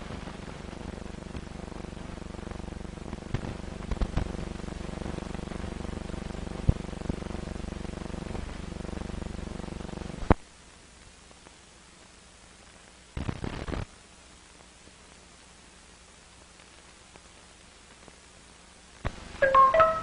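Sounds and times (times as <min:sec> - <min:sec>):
faint hiss: 0:00.0 - 0:20.0.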